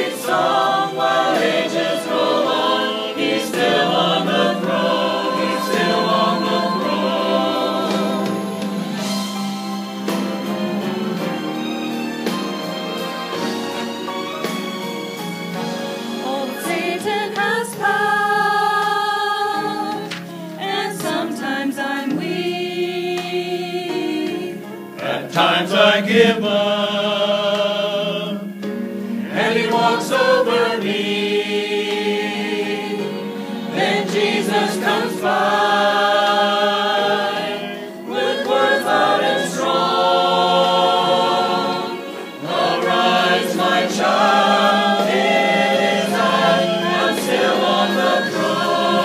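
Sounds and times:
choir singing: 0:00.0 - 0:49.0
singers breathing: 0:20.2 - 0:20.6.

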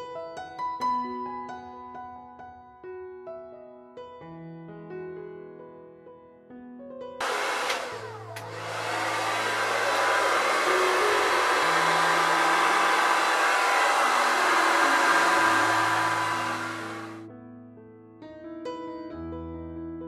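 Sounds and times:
hair dryer blowing: 0:07.2 - 0:17.2.

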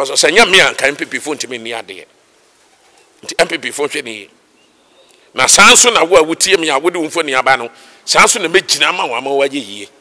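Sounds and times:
man speaking: 0:00.0 - 0:02.1, 0:03.2 - 0:04.3, 0:05.3 - 0:10.0.

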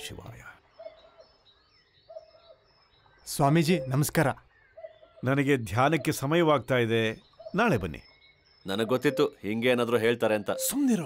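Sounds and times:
high bird chirps: 0:00.0 - 0:11.0
low bird calls: 0:00.0 - 0:11.0.

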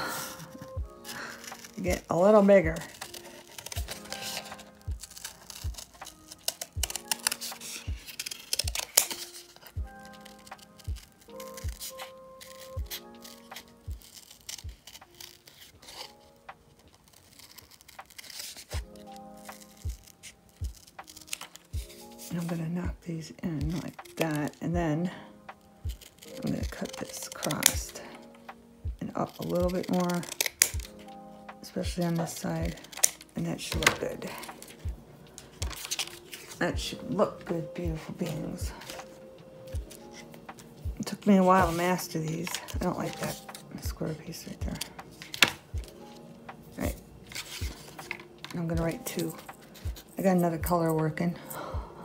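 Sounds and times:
scissors cutting cardboard: 0:00.0 - 0:50.4
background music with soft beat: 0:00.0 - 0:52.0.

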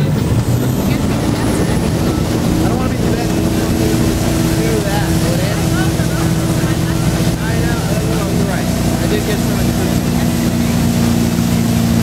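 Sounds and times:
motorboat engine running: 0:00.0 - 0:12.0
wake water rushing: 0:00.0 - 0:12.0.

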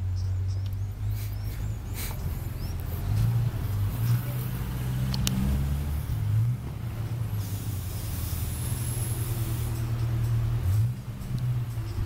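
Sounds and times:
diesel engine idling: 0:00.0 - 0:12.0.

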